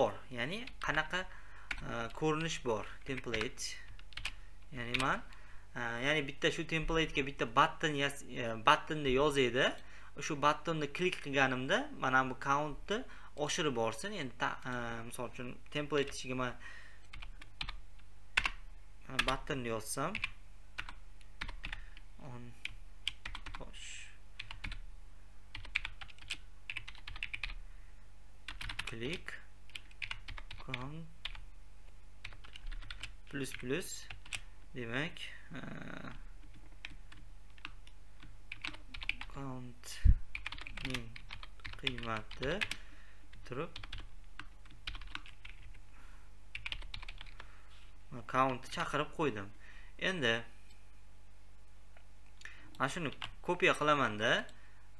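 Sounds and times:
faint low hum: 0:00.0 - 0:54.9.

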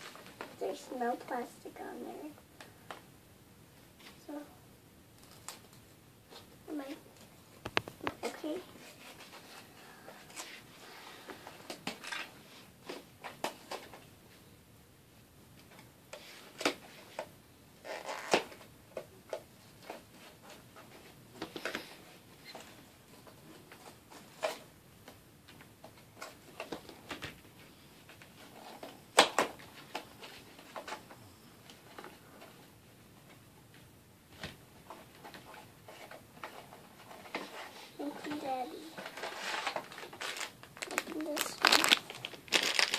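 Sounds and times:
foil and cardboard being opened: 0:39.1 - 0:42.9.

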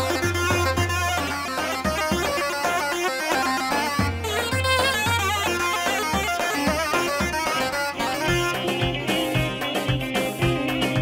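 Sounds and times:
instrumental folk dance music: 0:00.0 - 0:11.0.

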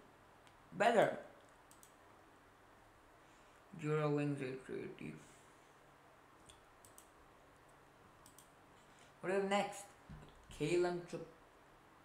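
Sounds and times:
faint computer mouse clicks: 0:01.4 - 0:02.0, 0:06.4 - 0:07.2, 0:08.2 - 0:08.6.

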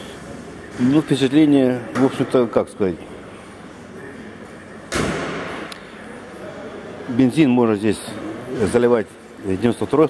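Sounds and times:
thump echoing in a hall: 0:04.8 - 0:06.1.

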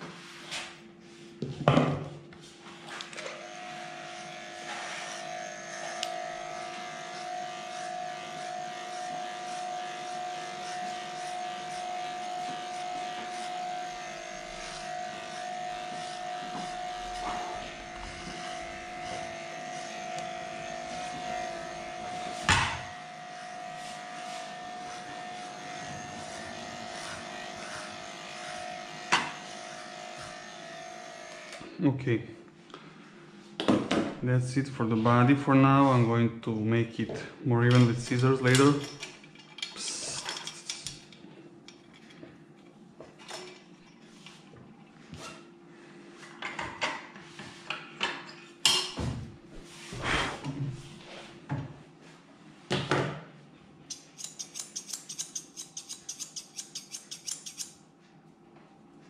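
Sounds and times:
electric pet hair clipper humming: 0:03.2 - 0:31.8, 0:53.9 - 0:57.8.

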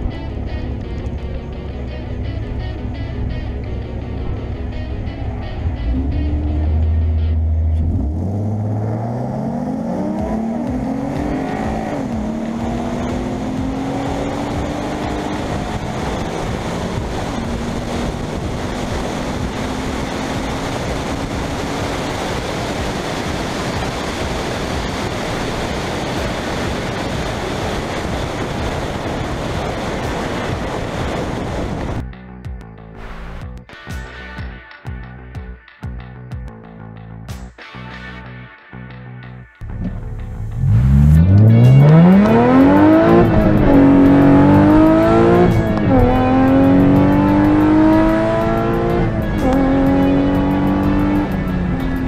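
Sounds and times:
wind and road noise: 0:00.0 - 0:32.2, 0:33.0 - 0:33.6, 0:39.6 - 0:52.0
car engine revving through gears: 0:05.1 - 0:32.0, 0:39.6 - 0:52.0.

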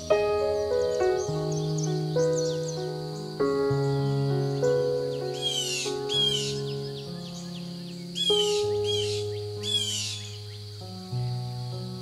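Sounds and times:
slow soft piano music: 0:00.0 - 0:12.0
harsh raspy bird calls: 0:04.6 - 0:10.8.

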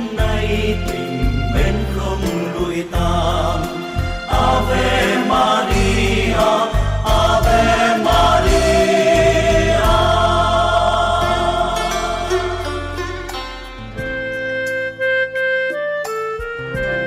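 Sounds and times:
pulsing bass: 0:00.0 - 0:05.1, 0:05.7 - 0:15.5
choir singing a hymn: 0:00.0 - 0:13.0.

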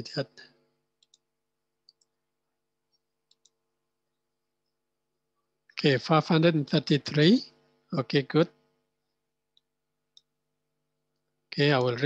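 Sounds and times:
faint steady hum: 0:00.0 - 0:12.0
computer mouse clicks: 0:01.0 - 0:02.2, 0:02.9 - 0:03.6, 0:09.5 - 0:10.3.

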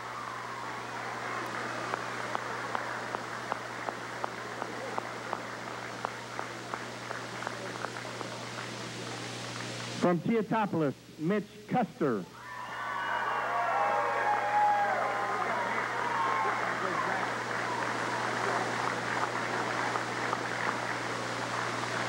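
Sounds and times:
crowd applauding: 0:00.0 - 0:10.0, 0:12.4 - 0:22.0
steady low hum: 0:00.0 - 0:12.4, 0:13.4 - 0:22.0
nearby person clapping: 0:01.1 - 0:10.0, 0:15.0 - 0:22.0.

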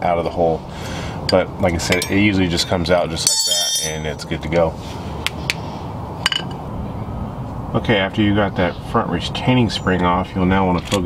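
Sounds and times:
low background hum: 0:00.0 - 0:11.0
short ringing clink: 0:03.2 - 0:04.1.

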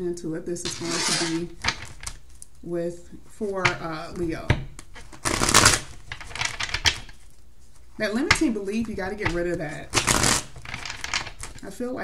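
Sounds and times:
cards rustling while shuffled: 0:00.7 - 0:02.4, 0:03.6 - 0:11.6.

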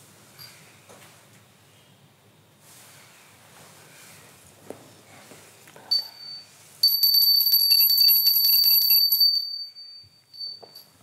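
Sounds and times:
altar bells ringing: 0:05.9 - 0:11.0.

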